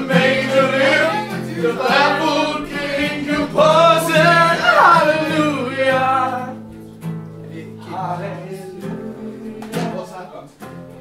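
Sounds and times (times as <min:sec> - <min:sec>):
group singing loudly: 0:00.0 - 0:06.7, 0:07.5 - 0:10.1
acoustic guitar: 0:00.0 - 0:11.0.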